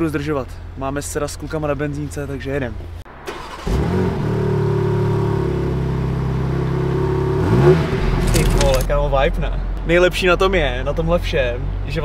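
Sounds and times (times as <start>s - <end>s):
car engine droning and revving: 2.8s - 12.0s.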